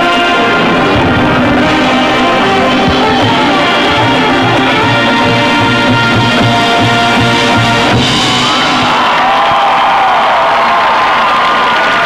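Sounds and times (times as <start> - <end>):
marching band holding a chord: 0.0 - 9.6
crowd cheering and whooping: 8.0 - 12.0.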